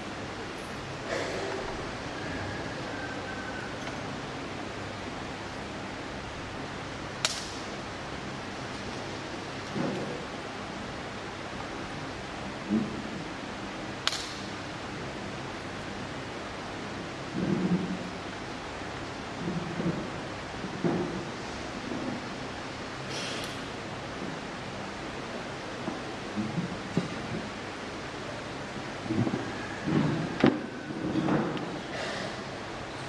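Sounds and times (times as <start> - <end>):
people moving about: 0.0 - 5.8, 28.7 - 32.7
room hiss: 0.0 - 33.0.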